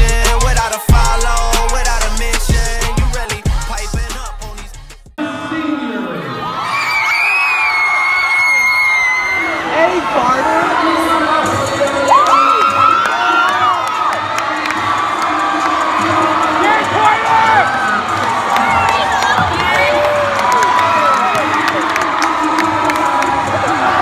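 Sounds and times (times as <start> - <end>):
crowd cheering and screaming: 6.0 - 24.0.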